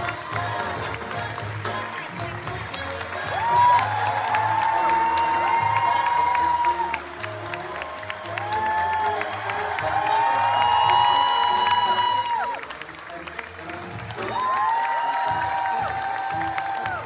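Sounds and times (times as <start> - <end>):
audience applause: 0.0 - 17.0.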